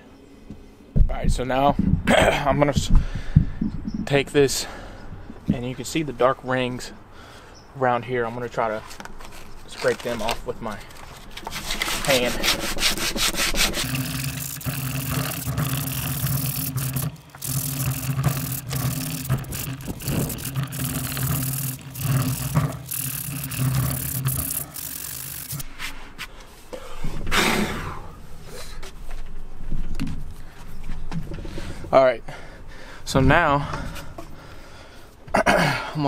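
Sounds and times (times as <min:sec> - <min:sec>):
sandpaper rubbing on wood: 0:11.5 - 0:25.6.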